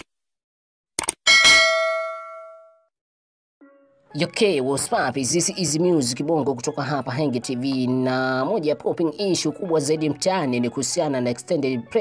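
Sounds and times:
bright bell ding: 0:01.3 - 0:02.8.

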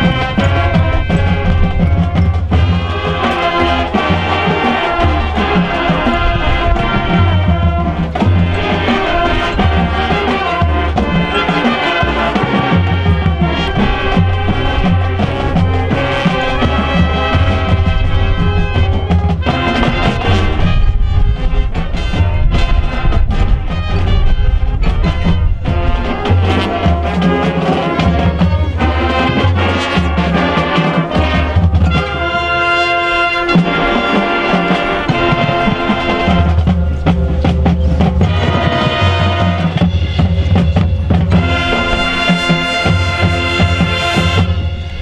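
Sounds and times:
brass chords: 0:00.0 - 0:45.0
drums: 0:00.0 - 0:45.0
low brass bass line: 0:00.0 - 0:45.0.

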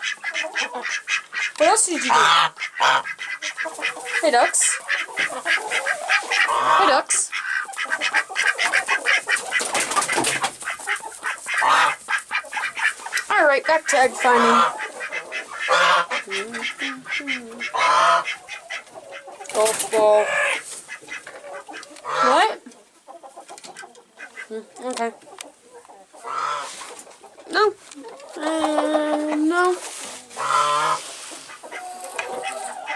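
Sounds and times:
ducks calling: 0:00.0 - 0:32.9.

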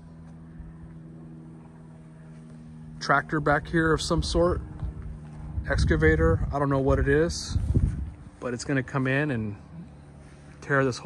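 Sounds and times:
faint rumble: 0:00.0 - 0:11.0
low mechanical hum: 0:00.0 - 0:11.0.

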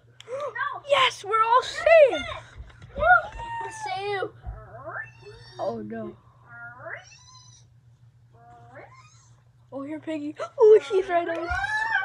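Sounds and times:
steady low hum: 0:00.0 - 0:12.0
high meow-like cry: 0:11.5 - 0:12.0.

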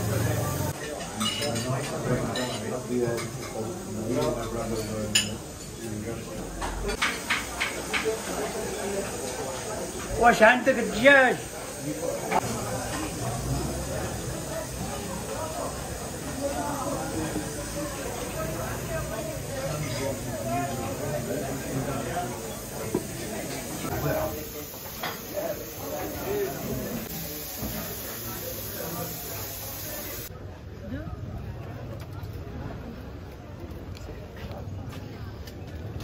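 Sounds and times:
people talking: 0:00.0 - 0:36.0
plates and cutlery clinking: 0:00.7 - 0:06.0, 0:06.6 - 0:08.5, 0:22.1 - 0:26.0
steady hiss: 0:06.9 - 0:30.3.

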